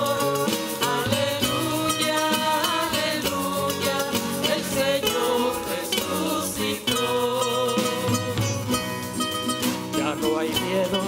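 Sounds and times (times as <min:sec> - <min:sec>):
person singing a hymn: 0:00.0 - 0:08.8
strummed guitar: 0:00.0 - 0:11.0.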